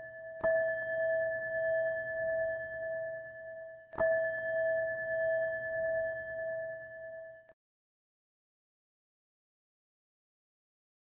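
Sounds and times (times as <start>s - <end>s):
singing bowl ringing: 0.0s - 7.6s.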